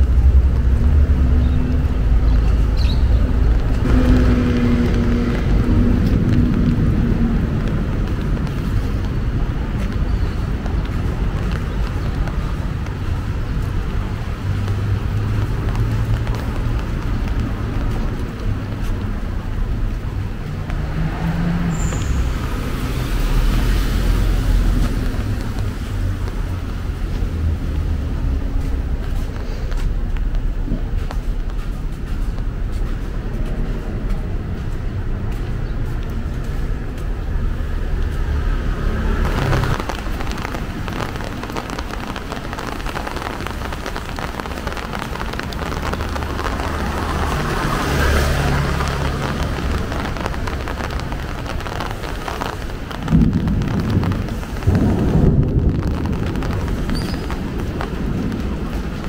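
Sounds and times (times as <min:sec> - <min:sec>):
loud low rumbles: 0:00.0 - 0:59.0
rain on a wet street: 0:00.0 - 0:59.0.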